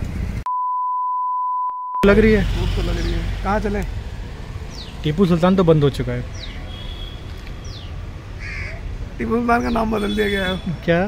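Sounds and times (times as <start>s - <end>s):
bird harsh caw-like call: 8.4s - 8.8s.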